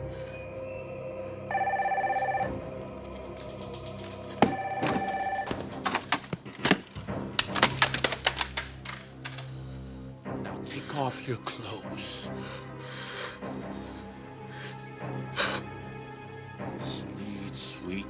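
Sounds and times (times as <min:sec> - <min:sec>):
telephone ringing: 0:01.5 - 0:02.6, 0:04.4 - 0:05.5
sharp clicks and knocks: 0:04.4 - 0:09.5.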